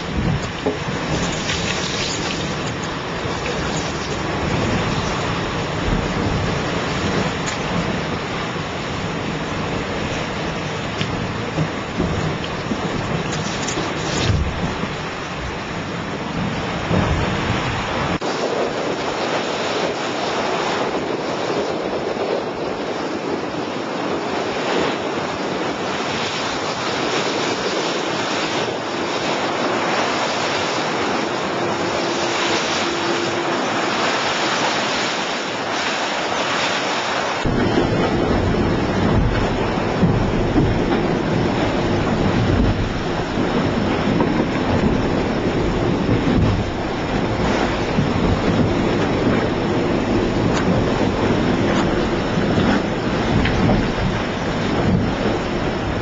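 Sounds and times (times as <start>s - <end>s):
deep heavy rumble: 0.0s - 18.9s, 37.4s - 56.0s
rushing water and spray: 0.0s - 56.0s
wind buffeting microphone: 0.0s - 56.0s.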